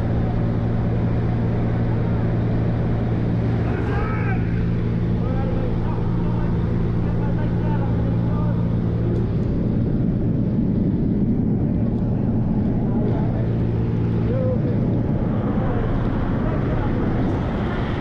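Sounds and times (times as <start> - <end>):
plane engine and propeller drone: 0.0 - 18.0
loud rushing noise: 9.6 - 18.0.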